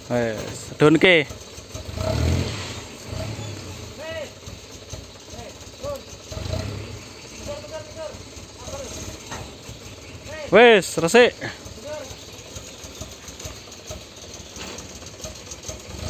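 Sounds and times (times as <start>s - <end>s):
truck engine rumbling: 0.0s - 16.0s.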